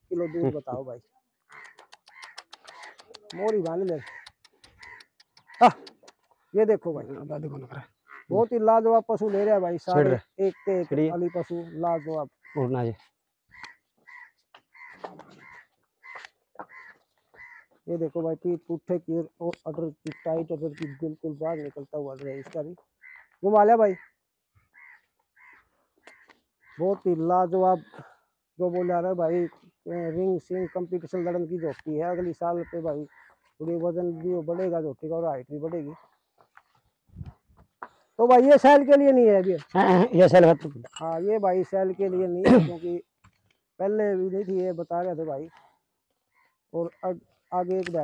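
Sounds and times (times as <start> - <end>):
man calling loudly: 0.0 - 1.0, 5.5 - 5.9, 6.5 - 13.0, 17.9 - 22.8, 26.8 - 36.0, 38.2 - 43.0, 43.8 - 45.6
birds chirping: 0.0 - 48.0
men talking: 0.1 - 1.0, 3.0 - 4.2, 5.5 - 5.9, 6.5 - 13.0, 17.9 - 22.8, 23.4 - 24.0, 26.8 - 36.0, 38.2 - 43.1, 43.8 - 45.6, 46.8 - 48.0.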